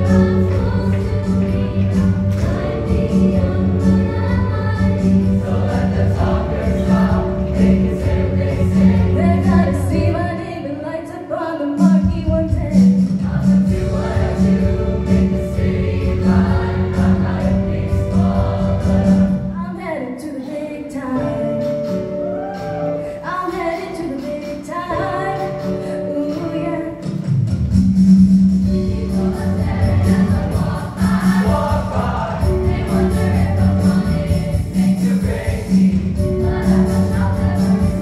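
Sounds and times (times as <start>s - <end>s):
choir singing together: 0.0s - 10.1s, 13.0s - 19.6s, 28.7s - 38.0s
pulsing bass accompaniment: 0.0s - 10.2s, 12.1s - 19.6s, 27.6s - 38.0s.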